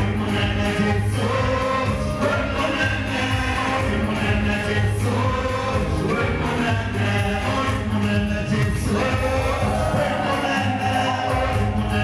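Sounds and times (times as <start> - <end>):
choir singing: 0.0 - 8.0, 8.8 - 12.0
strong low bass accompaniment: 0.0 - 12.0.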